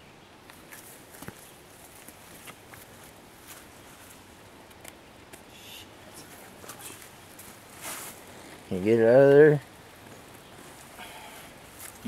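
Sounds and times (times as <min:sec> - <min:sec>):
faint rustles and small clicks: 0:00.4 - 0:05.5
footsteps through grass and leaves: 0:00.6 - 0:04.3, 0:06.2 - 0:08.9, 0:10.0 - 0:12.0.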